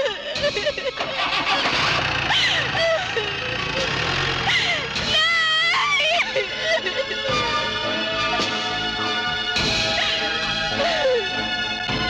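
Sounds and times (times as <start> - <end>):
film music: 0.0 - 12.0
car engine pulling away: 0.4 - 10.7
wailing voice: 5.0 - 6.4.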